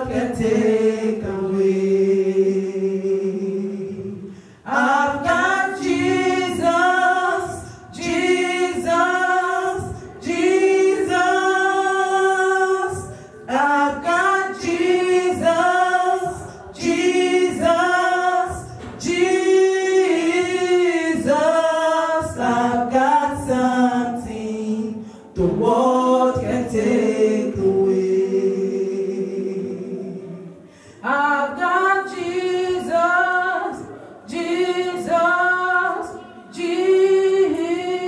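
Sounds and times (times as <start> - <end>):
women singing a cappella gospel: 0.0 - 38.0.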